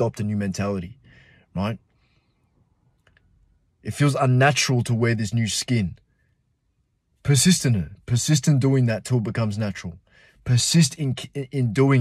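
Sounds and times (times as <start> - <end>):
man speaking: 0.0 - 1.8, 3.8 - 6.0, 7.2 - 12.0.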